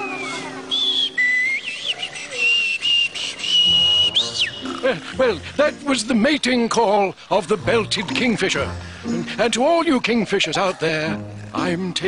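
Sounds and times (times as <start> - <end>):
person whistling bird call: 0.0 - 4.7.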